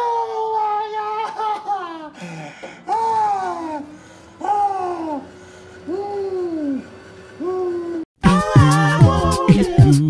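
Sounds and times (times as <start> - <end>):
person moaning: 0.0 - 9.4.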